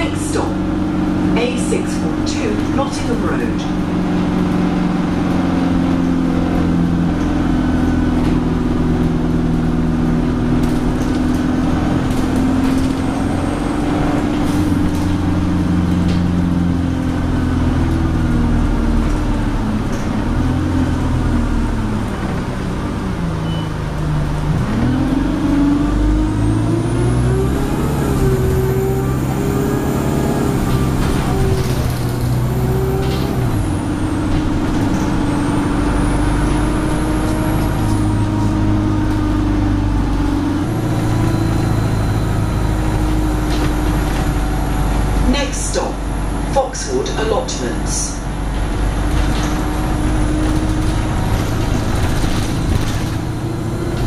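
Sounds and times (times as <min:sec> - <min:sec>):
bus diesel engine running: 0:00.0 - 0:54.0.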